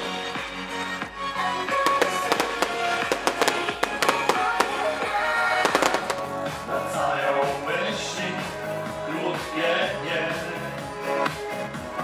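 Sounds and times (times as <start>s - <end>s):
music playing: 0.0s - 12.0s
fireworks bangs and crackles: 1.7s - 6.6s.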